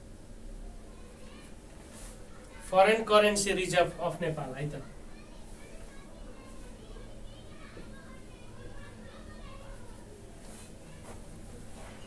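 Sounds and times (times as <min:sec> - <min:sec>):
faint children's voices: 0:00.0 - 0:12.0.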